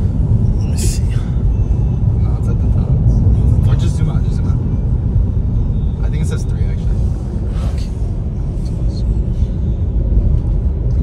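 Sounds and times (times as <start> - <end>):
road and tyre rumble in car: 0.0 - 11.0.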